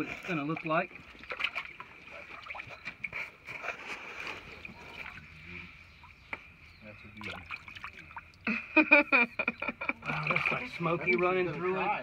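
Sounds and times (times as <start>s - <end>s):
water sloshing and splashing: 0.0s - 8.5s, 10.0s - 12.0s.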